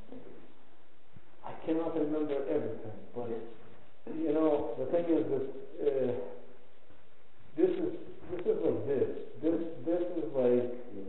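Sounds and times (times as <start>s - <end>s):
man speaking: 1.4s - 6.6s, 7.5s - 11.0s.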